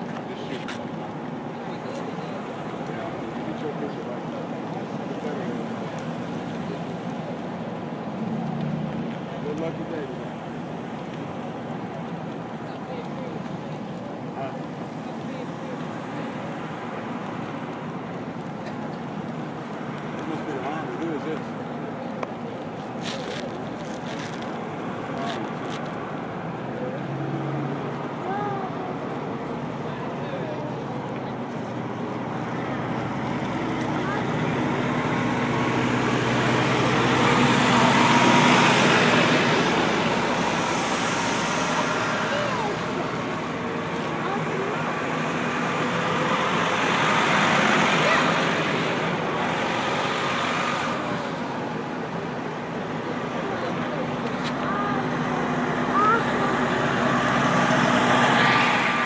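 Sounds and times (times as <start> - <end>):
coach diesel engines humming: 0.0 - 59.0
tyre and road noise: 0.0 - 59.0.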